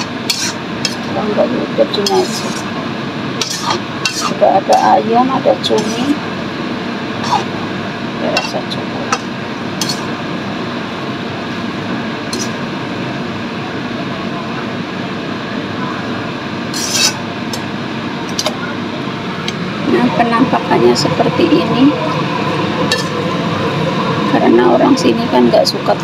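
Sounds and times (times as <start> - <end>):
ladle clinking and scraping on pan: 0.0 - 1.1, 1.9 - 2.7, 3.4 - 5.0, 5.6 - 6.2, 7.2 - 7.5, 8.3 - 10.1, 12.3 - 12.6, 16.8 - 17.2, 22.9 - 23.2
noodles frying in a wok: 0.0 - 19.8, 21.2 - 24.4.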